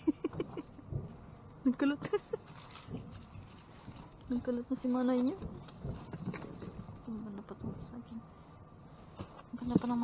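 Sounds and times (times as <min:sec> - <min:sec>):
woman laughing: 0:00.0 - 0:00.9, 0:01.8 - 0:02.6.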